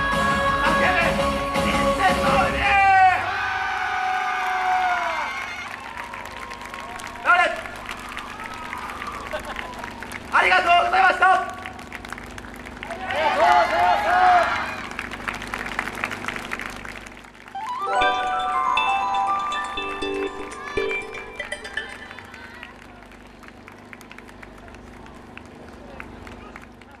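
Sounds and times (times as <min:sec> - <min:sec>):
generator humming: 0:05.3 - 0:27.0
music with held tones: 0:17.5 - 0:22.7.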